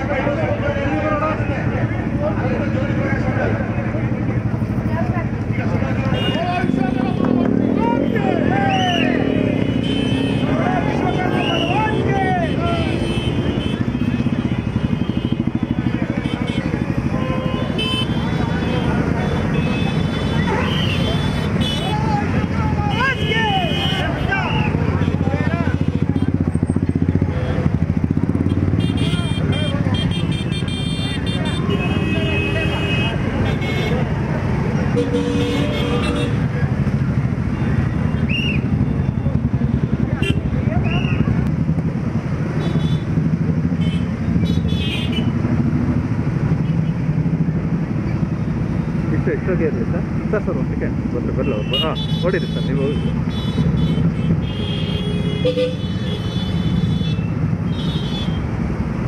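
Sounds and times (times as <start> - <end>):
motorcycle engines rumbling: 0.0 - 59.0
people calling out: 5.1 - 14.3, 15.4 - 26.4, 40.1 - 41.4.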